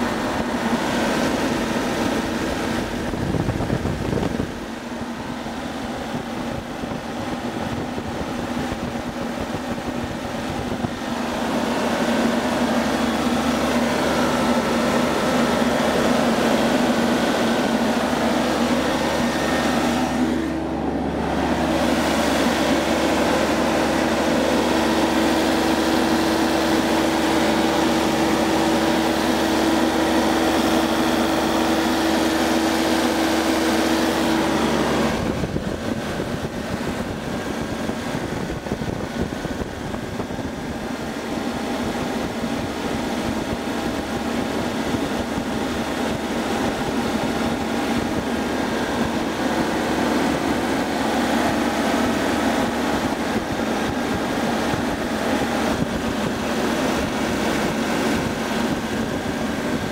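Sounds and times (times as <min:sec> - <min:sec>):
diesel engine running: 0:00.0 - 0:59.9.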